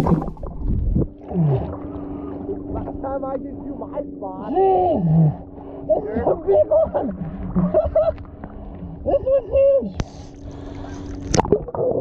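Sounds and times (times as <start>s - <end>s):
low hum: 0.0s - 12.0s
muffled water sloshing: 0.0s - 12.0s.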